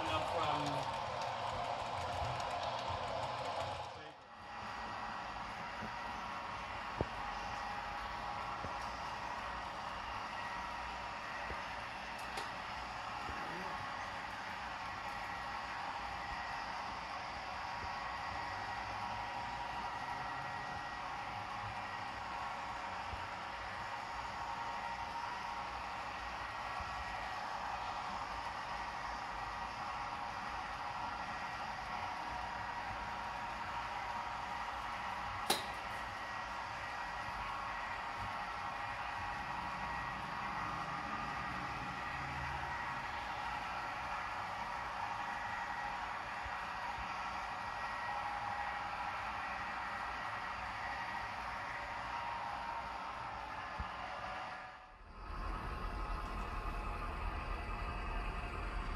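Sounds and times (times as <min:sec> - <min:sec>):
model train whirring on track: 0:00.0 - 0:58.9
sharp click: 0:35.5 - 0:35.8.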